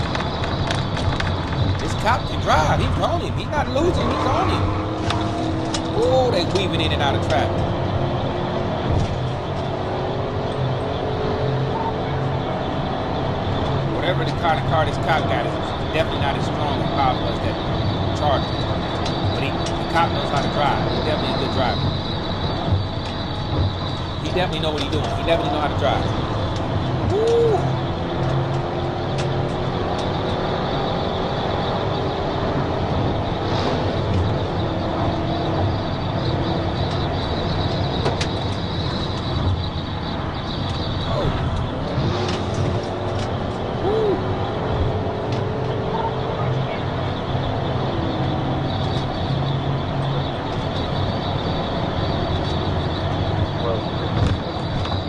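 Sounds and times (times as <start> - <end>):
car engine inside cabin: 0.0 - 55.0.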